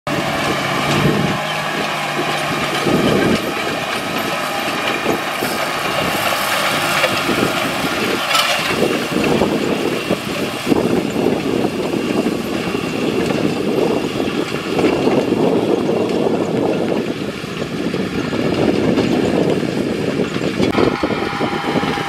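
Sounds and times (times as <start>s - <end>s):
tractor diesel engine running: 0.1s - 22.0s.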